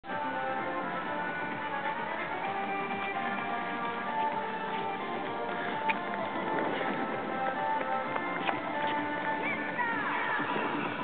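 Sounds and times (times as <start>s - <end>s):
music playing: 0.1s - 11.0s
running footsteps on asphalt: 0.1s - 11.0s.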